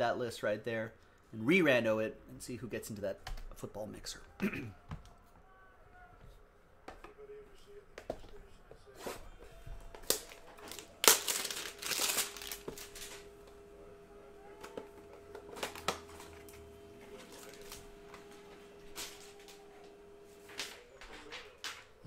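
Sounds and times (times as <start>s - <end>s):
card and paper tearing: 10.0s - 13.3s.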